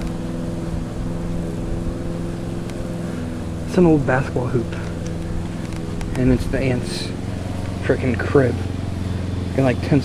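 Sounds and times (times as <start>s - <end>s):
motor hum: 0.0s - 10.0s.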